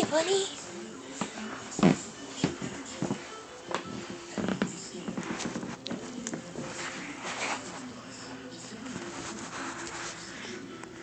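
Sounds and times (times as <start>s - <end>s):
television speech: 0.0s - 11.0s.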